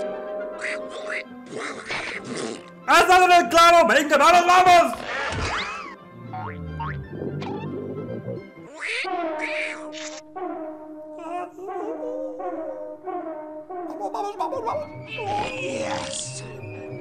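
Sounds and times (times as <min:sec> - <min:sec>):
held wavering musical notes: 0:06.0 - 0:09.5
rising pitch glides: 0:06.1 - 0:08.6.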